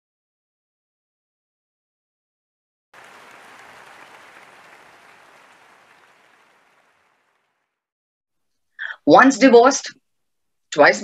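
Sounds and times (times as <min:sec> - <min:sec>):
audience applause: 0:03.0 - 0:07.8.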